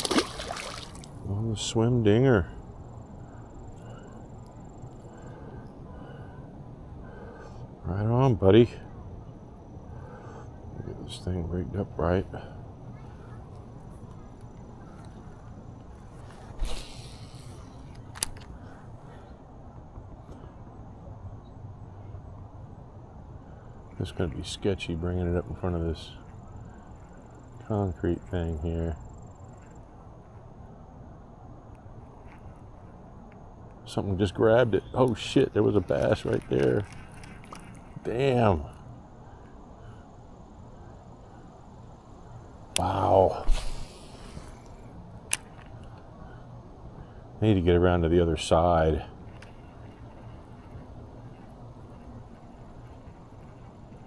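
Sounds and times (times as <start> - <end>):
low outdoor background: 0.0 - 54.0
fishing tackle rustle: 13.5 - 18.6, 35.1 - 38.8, 49.2 - 54.0.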